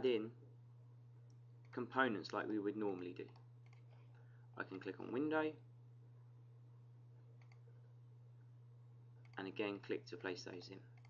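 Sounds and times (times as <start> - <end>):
steady low hum: 0.0 - 11.0
computer mouse click: 3.2 - 4.0, 7.4 - 7.6.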